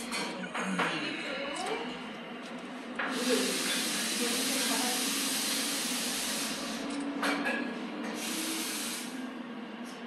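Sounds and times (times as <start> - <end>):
steam wand hissing: 3.1 - 7.0, 8.1 - 9.2.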